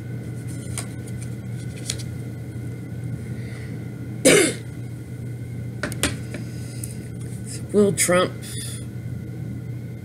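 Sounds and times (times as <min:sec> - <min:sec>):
steady low hum: 0:00.0 - 0:10.0
woman coughing: 0:04.2 - 0:04.7.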